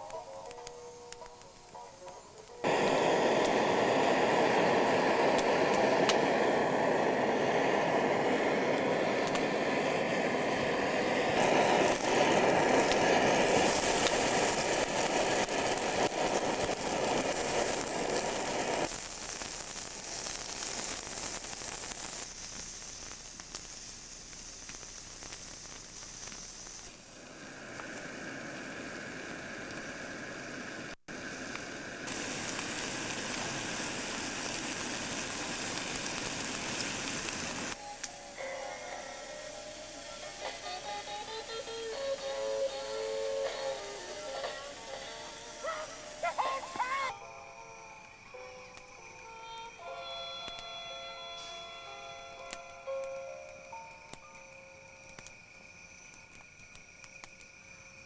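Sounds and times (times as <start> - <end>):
steady hissing noise: 0.0 - 58.0.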